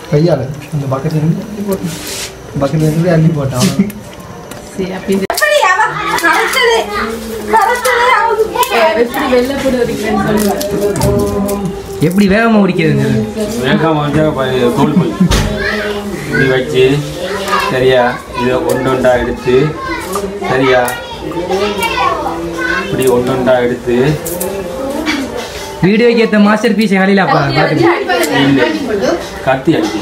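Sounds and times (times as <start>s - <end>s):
children talking: 3.0s - 30.0s.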